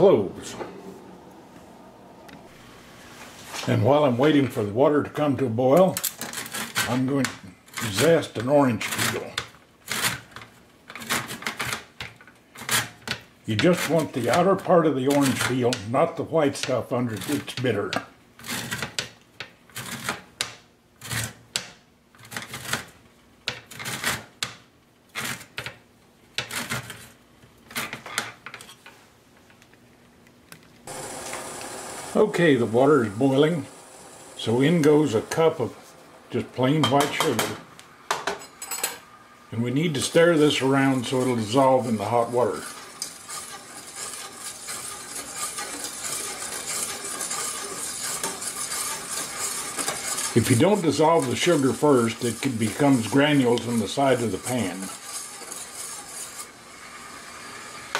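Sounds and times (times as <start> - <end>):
peel scraping on metal grater: 6.2 - 8.2, 8.8 - 11.8, 16.6 - 17.6, 18.4 - 19.0, 19.7 - 20.3, 23.7 - 24.3, 39.9 - 56.9.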